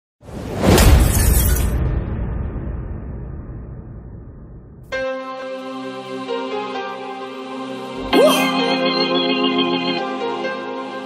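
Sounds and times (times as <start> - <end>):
cinematic noise burst with deep hit: 1.7 - 5.0
low rumble: 1.9 - 4.9.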